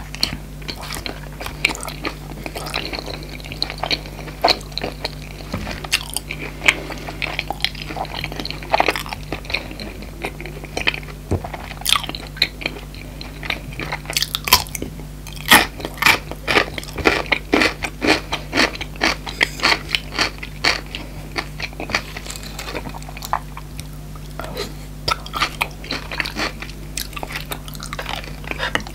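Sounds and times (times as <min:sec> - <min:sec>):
crunchy chewing of pickle: 0:00.0 - 0:28.9.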